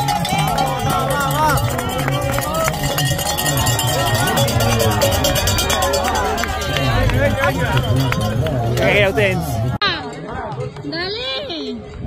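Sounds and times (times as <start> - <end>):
crowd shouting and cheering: 0.0 - 10.7.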